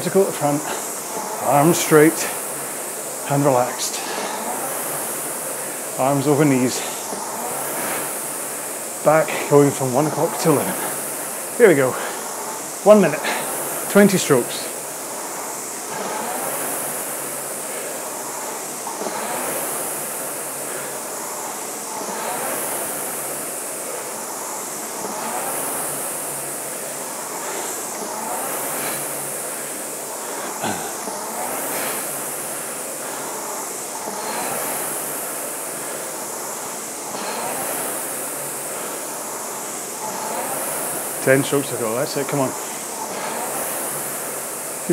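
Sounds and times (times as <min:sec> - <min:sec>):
rowing machine flywheel whooshing: 0:00.0 - 0:44.9.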